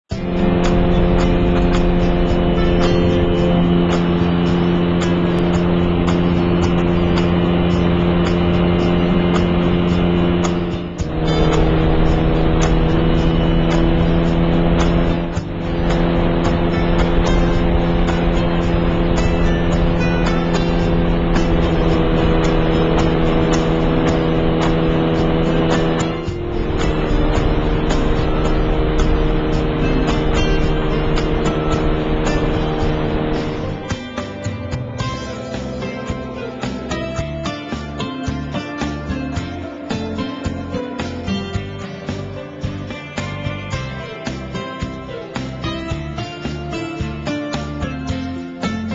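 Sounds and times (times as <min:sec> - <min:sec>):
engine droning: 0:00.0 - 0:48.9
background music with beat: 0:00.1 - 0:48.9.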